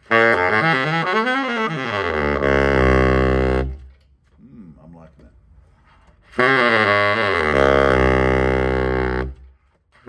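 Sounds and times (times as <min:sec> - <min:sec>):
baritone saxophone low note: 0:00.0 - 0:03.9, 0:06.2 - 0:09.5.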